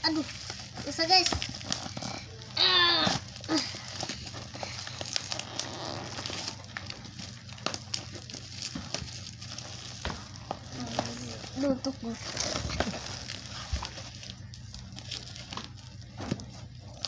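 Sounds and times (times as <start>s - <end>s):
plastic mailer bag crinkling: 0.0s - 17.0s.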